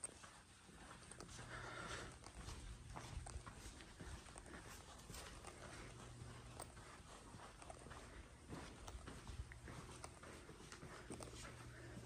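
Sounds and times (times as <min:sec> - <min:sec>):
faint footsteps on hard floor: 0:00.0 - 0:12.0.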